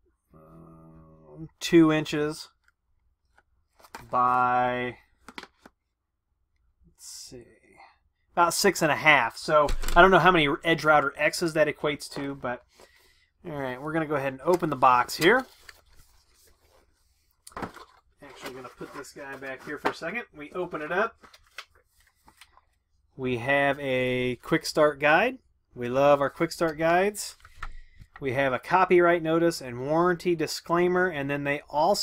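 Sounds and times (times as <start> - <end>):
paper and cardboard rustling: 3.6 - 4.4, 14.0 - 22.8.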